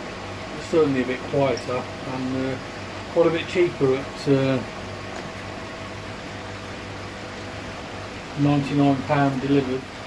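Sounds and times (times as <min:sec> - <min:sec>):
air pump humming: 0:00.0 - 0:10.0.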